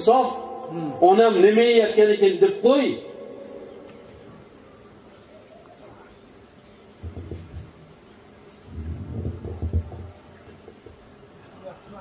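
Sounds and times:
low buzzing rumbles: 0:00.0 - 0:12.0.

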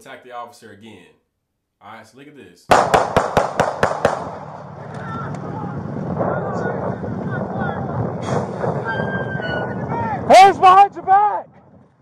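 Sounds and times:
rapid handgun shots: 0:02.7 - 0:04.8
rush of outdoor noise: 0:02.7 - 0:12.0.

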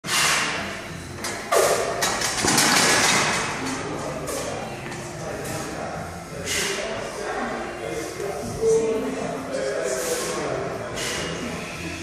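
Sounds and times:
barbell plates clanking: 0:01.2 - 0:03.9.

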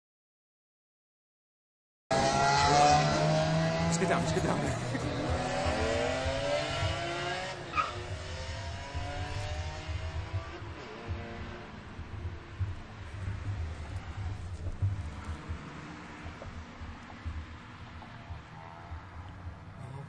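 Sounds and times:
cars passing by: 0:02.1 - 0:20.0
low traffic rumble: 0:02.1 - 0:20.0.

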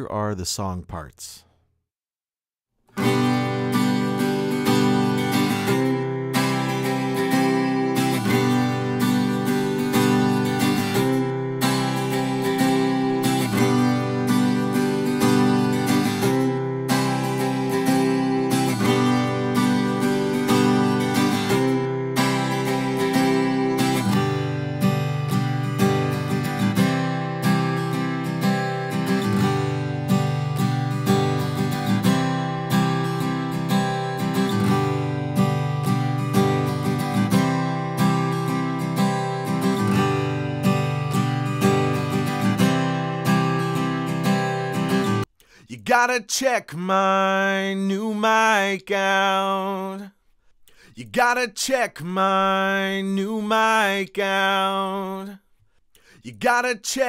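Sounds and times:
acoustic guitar playing: 0:02.9 - 0:45.3, 0:47.1 - 0:50.0, 0:50.7 - 0:55.3.

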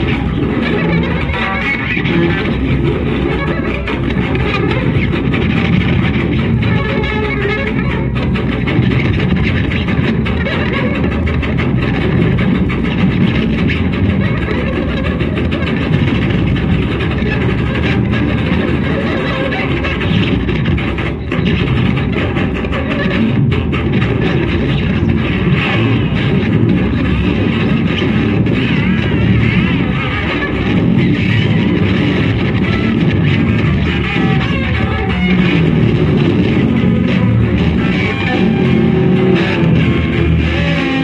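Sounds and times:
loud electric guitars playing: 0:00.0 - 0:41.0.

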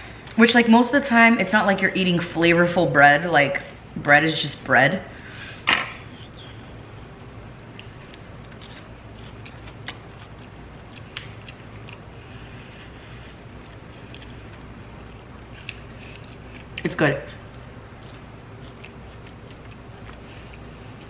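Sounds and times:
faint chewing of toast: 0:07.5 - 0:21.0.

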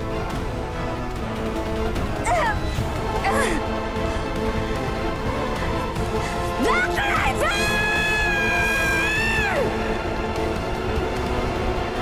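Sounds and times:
dramatic music: 0:00.0 - 0:12.0.

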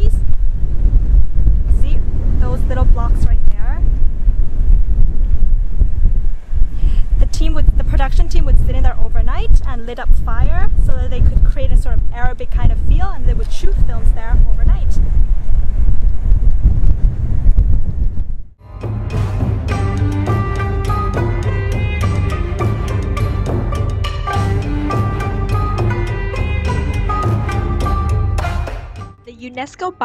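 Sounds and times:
wind buffeting microphone: 0:00.0 - 0:18.6.

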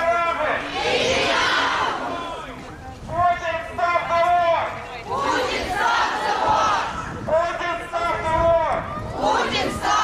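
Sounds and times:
crowd chanting: 0:00.6 - 0:02.3, 0:05.1 - 0:07.0, 0:09.2 - 0:10.0.

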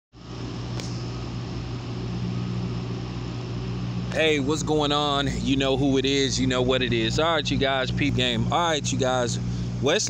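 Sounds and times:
low machine hum: 0:00.2 - 0:10.0.

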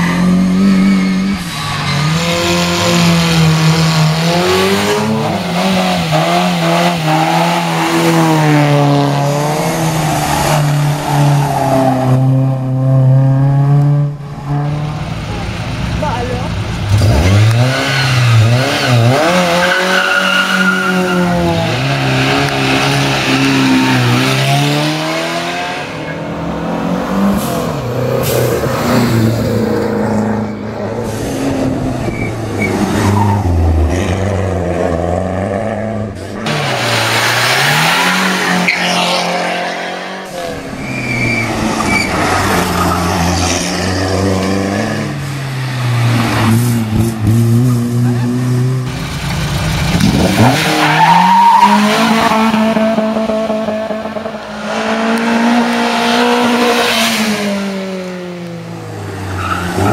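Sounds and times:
rally cars accelerating past: 0:16.8 - 0:59.9.

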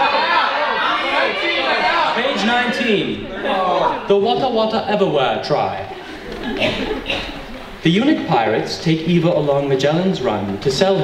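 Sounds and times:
audience voices talking: 0:00.0 - 0:11.0.

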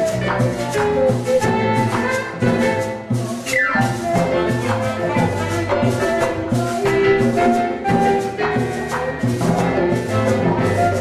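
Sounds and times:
drum kit and hand percussion: 0:00.0 - 0:11.0
latin dance band playing: 0:00.0 - 0:11.0
wind instruments holding notes: 0:00.0 - 0:11.0.

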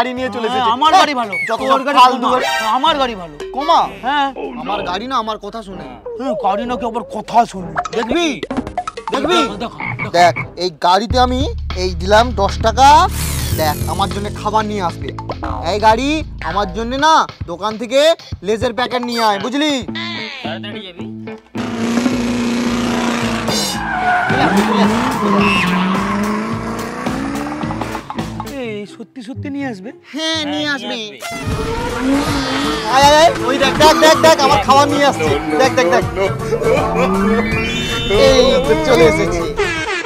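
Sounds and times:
tires squealing: 0:21.6 - 0:28.2, 0:31.3 - 0:39.8
race car engine revving: 0:21.6 - 0:28.3, 0:31.4 - 0:34.3, 0:36.2 - 0:38.8
man crying out wordlessly: 0:30.4 - 0:39.9.

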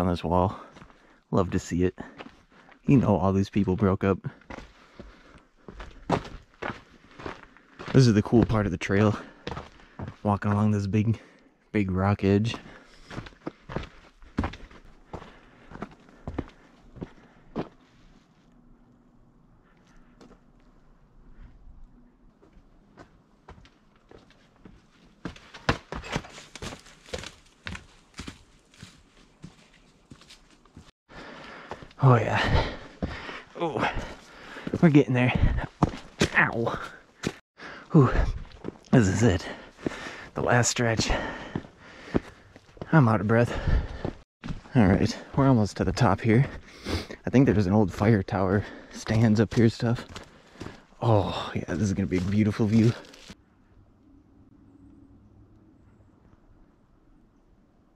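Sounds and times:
footsteps on dirt and rock trail: 0:00.5 - 0:01.2, 0:02.0 - 0:02.8, 0:04.3 - 0:11.4, 0:12.2 - 0:18.4, 0:19.8 - 0:20.8, 0:22.4 - 0:53.4
person breathing heavily: 0:00.5 - 0:01.3, 0:04.4 - 0:06.1, 0:09.1 - 0:10.2, 0:12.5 - 0:17.7, 0:31.1 - 0:38.6, 0:39.4 - 0:40.4, 0:41.0 - 0:44.3, 0:46.4 - 0:47.2, 0:48.5 - 0:49.0, 0:50.0 - 0:51.7.

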